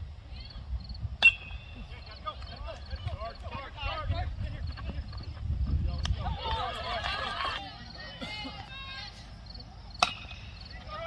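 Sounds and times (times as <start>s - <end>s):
baseball bat hitting ball: 10.0s - 10.6s.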